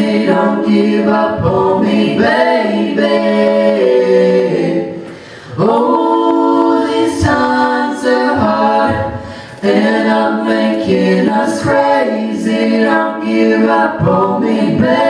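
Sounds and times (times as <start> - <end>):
band singing vocal harmonies: 0.0 - 15.0.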